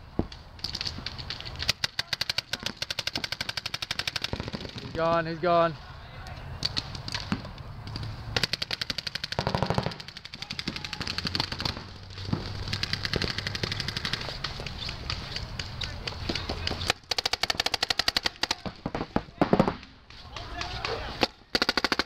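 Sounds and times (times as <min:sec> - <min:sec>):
paintball markers firing: 0:00.6 - 0:05.3, 0:06.6 - 0:22.0.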